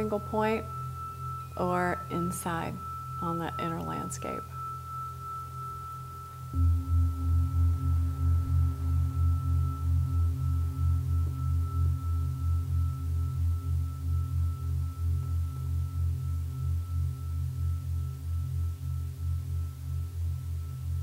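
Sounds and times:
deep pulsing tone: 0.0s - 21.0s
steady high ringing tone: 0.0s - 21.0s.

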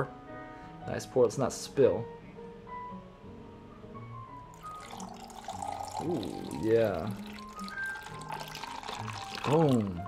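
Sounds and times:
soft background music: 0.0s - 10.0s
liquid pouring over ice: 4.5s - 10.0s.

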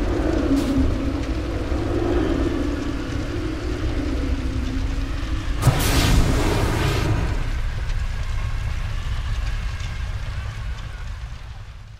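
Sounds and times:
deep steady rumble: 0.0s - 11.9s
hissing crackling layer: 0.0s - 11.9s
faint ticks: 7.7s - 11.8s.

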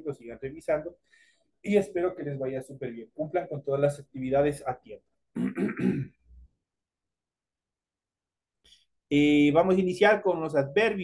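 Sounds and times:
man clearing his throat: 5.3s - 6.3s.

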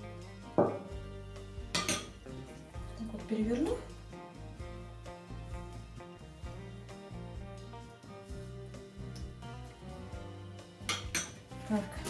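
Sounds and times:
soft instrumental music: 0.0s - 12.0s
metal spoon clinking ceramic bowl: 1.7s - 2.2s, 10.9s - 11.4s.

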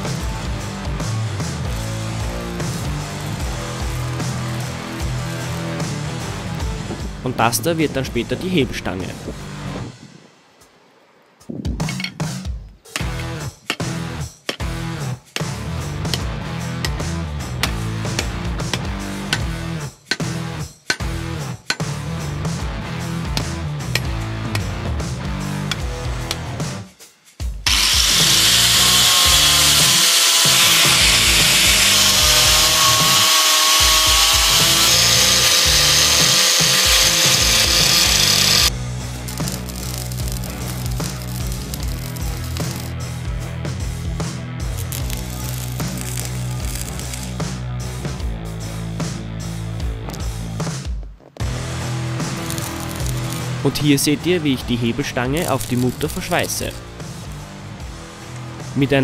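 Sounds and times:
background music with steady beat: 0.0s - 59.0s
angle grinder on steel: 27.7s - 43.0s, 52.3s - 53.5s, 55.4s - 56.9s.

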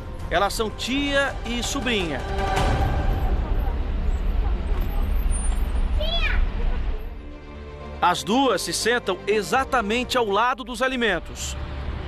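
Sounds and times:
vehicle engine rumble: 0.0s - 7.6s.

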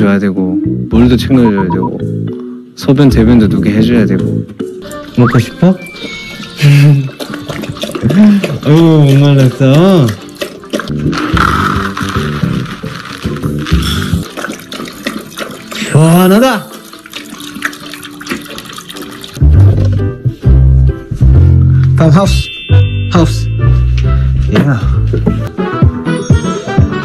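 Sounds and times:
steady pitched tone: 1.3s - 2.0s
water running into a bowl: 4.8s - 20.0s.

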